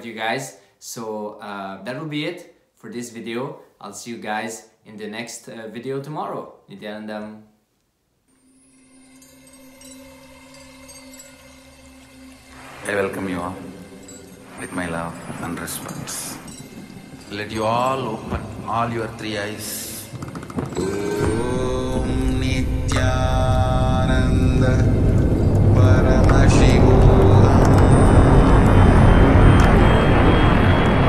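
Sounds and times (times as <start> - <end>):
shimmering high notes: 8.3 - 31.0
drone music: 8.4 - 31.0.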